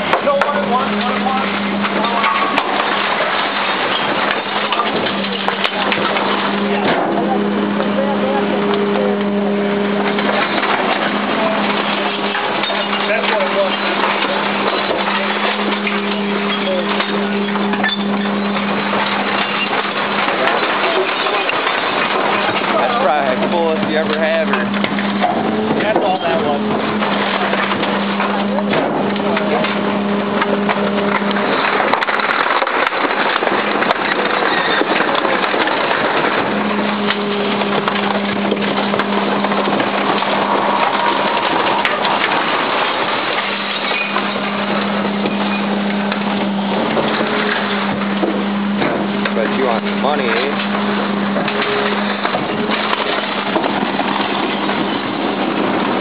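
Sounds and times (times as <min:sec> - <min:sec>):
garbage truck compacting wood: 0:00.0 - 0:56.0
low mechanical hum: 0:00.0 - 0:56.0.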